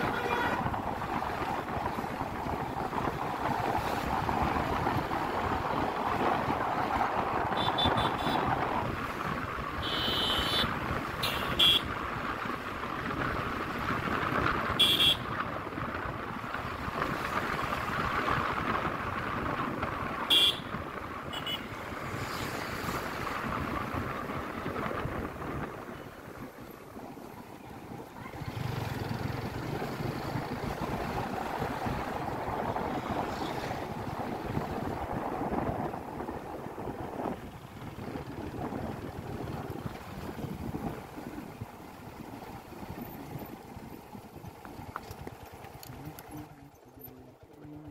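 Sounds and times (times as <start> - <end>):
wind noise on microphone: 0.0 - 46.5
motorcycle running: 0.0 - 47.9.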